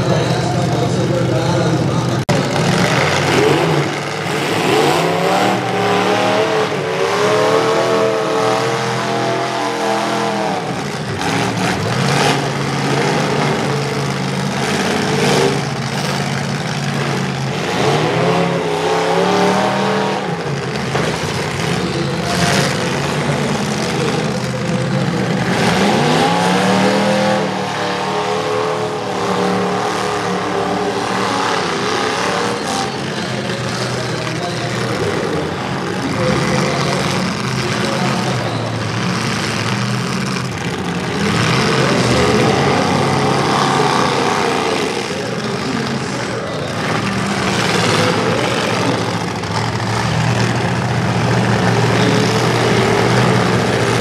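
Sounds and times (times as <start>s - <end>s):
truck engines revving: 0.0s - 54.0s.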